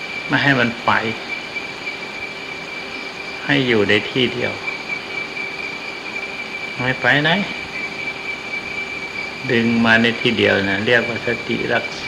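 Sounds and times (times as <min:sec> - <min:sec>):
recording hiss: 0:00.0 - 0:12.0
thin high whine: 0:00.0 - 0:12.0
man speaking: 0:00.3 - 0:01.2, 0:03.4 - 0:04.6, 0:06.8 - 0:07.6, 0:09.4 - 0:12.0.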